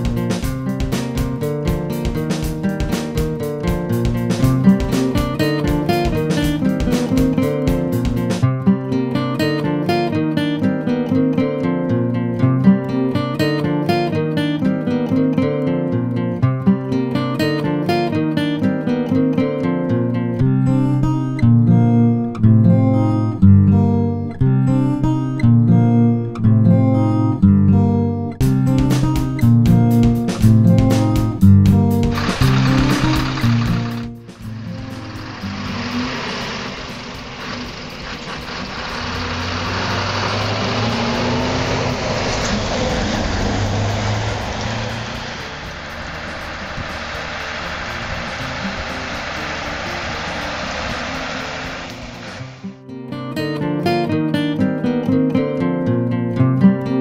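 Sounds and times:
strummed acoustic guitar: 0.0 - 57.0
lorry passing: 32.0 - 52.8.

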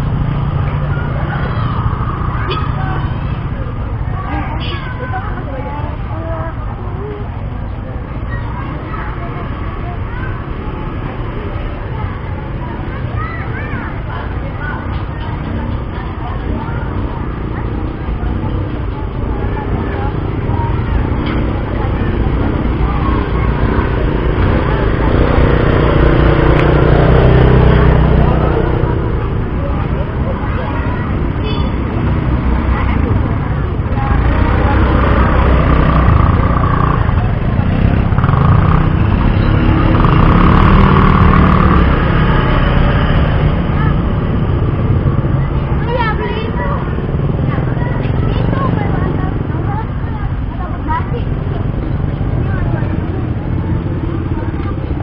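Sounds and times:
indistinct voices: 0.0 - 55.0.

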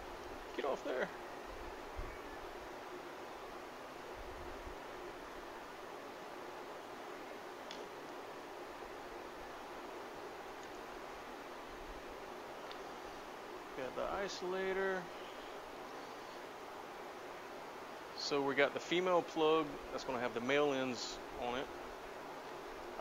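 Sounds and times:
steady background hiss: 0.0 - 23.0
light ticks: 12.6 - 12.8.

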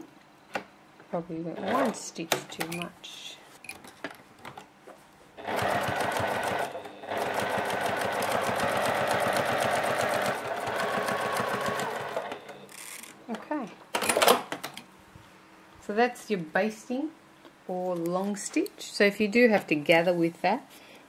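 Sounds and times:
sewing machine running fast: 5.4 - 12.3.

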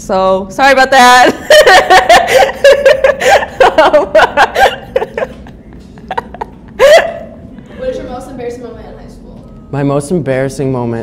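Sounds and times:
young woman laughing: 1.2 - 7.8.

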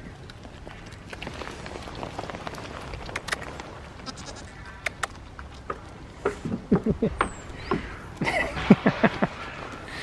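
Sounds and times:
goat chewing apple crunches: 0.2 - 6.0.

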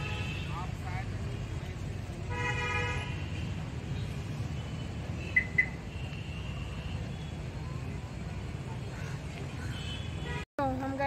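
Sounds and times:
vehicle horn: 0.0 - 0.7, 2.3 - 3.5, 9.7 - 10.4.

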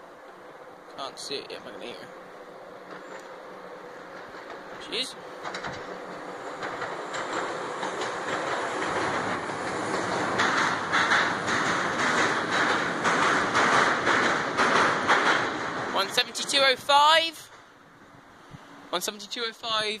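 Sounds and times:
wheels clattering over rail joints: 0.0 - 18.0
diesel train passing: 0.0 - 20.0.

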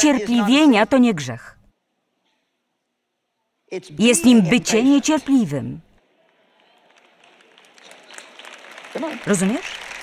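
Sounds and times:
audience applause: 6.0 - 10.0.

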